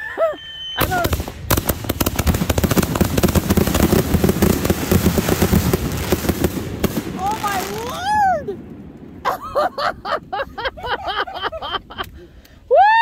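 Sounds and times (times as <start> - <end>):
fireworks popping and crackling: 0.8 - 9.4.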